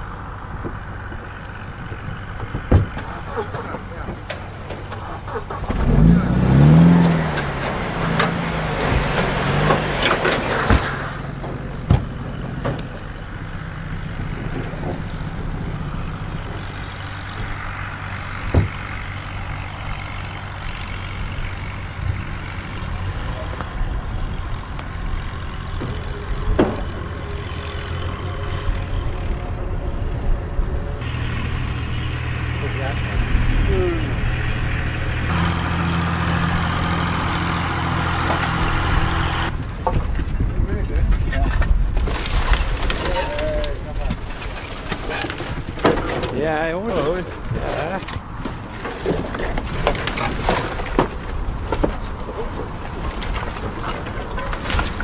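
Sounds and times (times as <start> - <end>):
car engine idling: 0.0 - 55.0
sharp knocks: 18.4 - 18.8.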